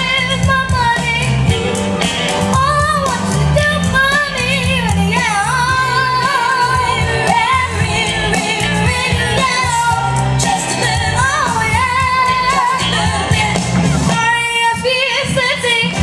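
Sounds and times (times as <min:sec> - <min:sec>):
girl singing soul-pop song: 0:00.0 - 0:16.0
live band accompaniment: 0:00.0 - 0:16.0
steady bass line: 0:00.0 - 0:16.0.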